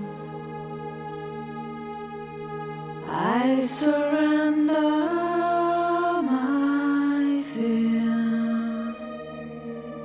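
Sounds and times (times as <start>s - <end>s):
steady low drone: 0.0s - 10.0s
person chanting: 3.0s - 9.5s.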